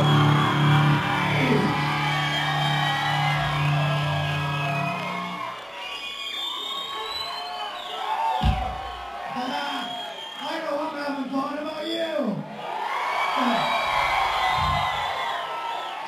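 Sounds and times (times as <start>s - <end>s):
crowd cheering and yelling: 0.0s - 16.0s
low thump: 8.4s - 8.9s, 14.5s - 15.2s.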